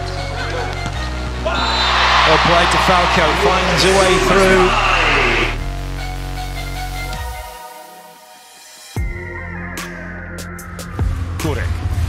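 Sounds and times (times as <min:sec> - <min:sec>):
steady bass: 0:02.3 - 0:06.2.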